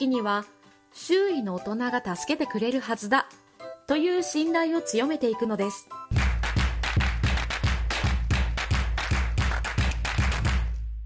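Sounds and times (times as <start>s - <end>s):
fast electronic beat: 6.1s - 11.0s.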